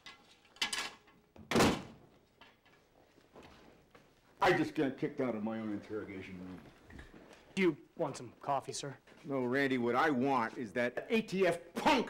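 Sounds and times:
door slamming shut: 1.4 - 2.0.

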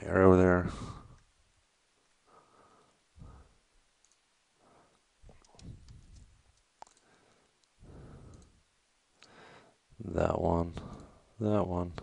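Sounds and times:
computer mouse clicks: 4.0 - 4.3, 5.3 - 8.6.

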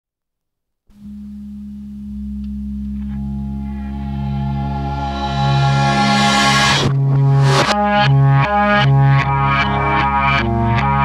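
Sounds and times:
low droning tones: 1.0 - 9.1
high ringing notes: 3.3 - 7.8.

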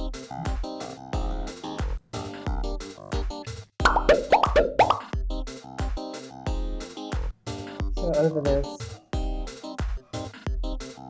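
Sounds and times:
electronic music with steady beat: 0.0 - 11.0
rising bloop sound effects: 3.8 - 5.1.

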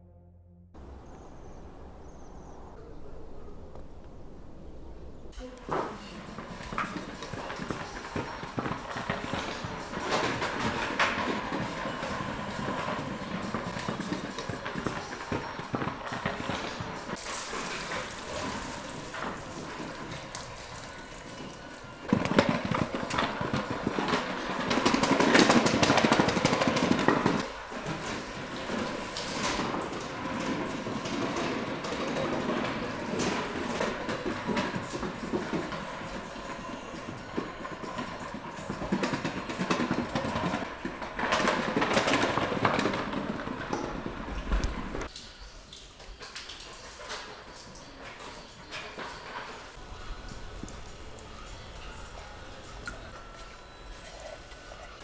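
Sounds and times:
scooter wheels rattling on tile: 5.7 - 45.1, 46.3 - 55.0.

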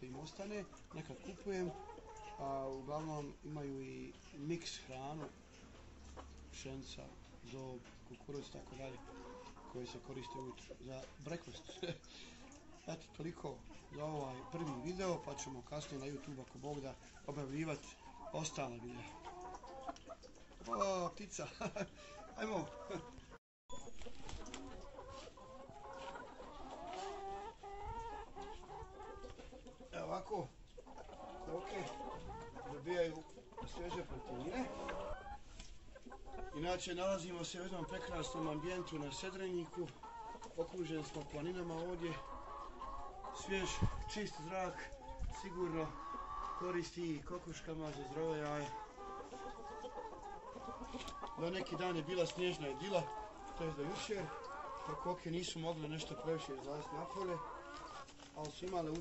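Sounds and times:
hens clucking: 0.0 - 59.0.

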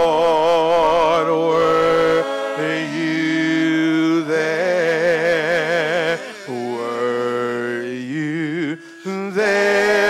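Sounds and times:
people singing into microphones: 0.0 - 10.0.

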